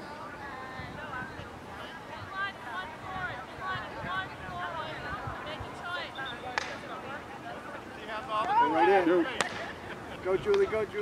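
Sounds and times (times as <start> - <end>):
spectators' voices: 0.0 - 11.0.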